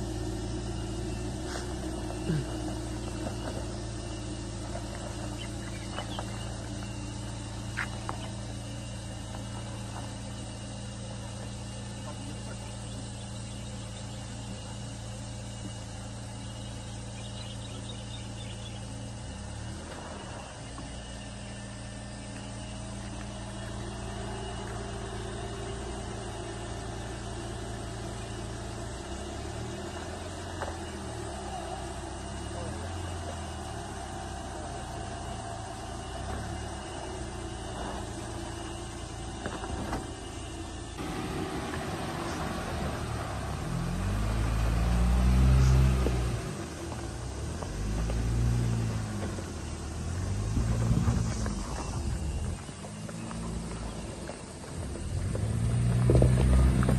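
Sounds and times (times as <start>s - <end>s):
deep engine rumble of climbing vehicle: 0.0s - 56.9s
suv engine idling: 0.0s - 56.9s.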